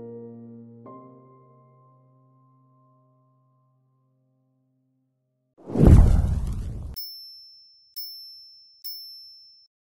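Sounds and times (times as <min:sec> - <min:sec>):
loud rushing with deep rumble: 0:05.7 - 0:07.0
short high-pitched dings: 0:07.0 - 0:09.7.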